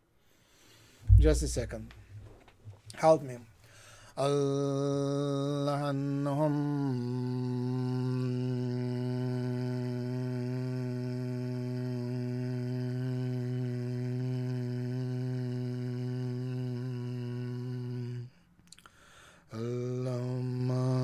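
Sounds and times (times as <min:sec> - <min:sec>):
man toning a low note: 0:01.1 - 0:02.2.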